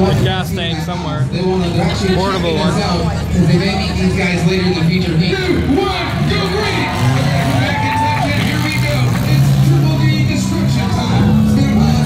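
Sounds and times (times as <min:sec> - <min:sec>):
car engines revving: 0:00.0 - 0:12.0
voices: 0:00.0 - 0:12.0.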